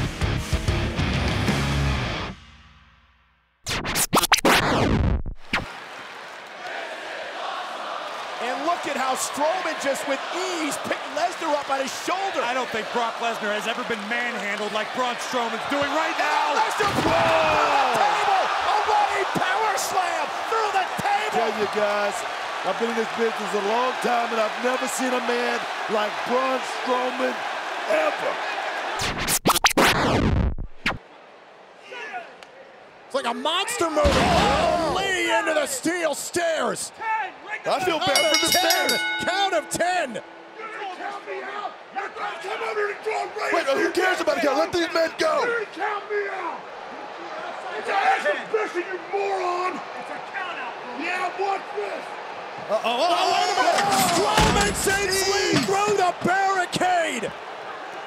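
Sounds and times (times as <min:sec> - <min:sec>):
record scratch effects: 0:03.7 - 0:05.7, 0:29.0 - 0:31.0
arena crowd noise: 0:05.5 - 0:29.3, 0:30.9 - 0:58.0.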